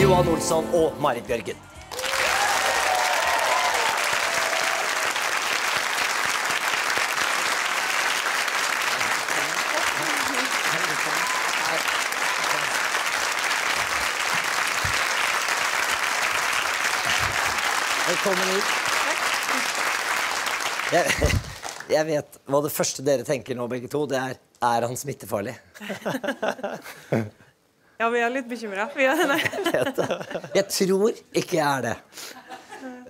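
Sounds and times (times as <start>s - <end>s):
audience applauding: 1.7s - 22.0s.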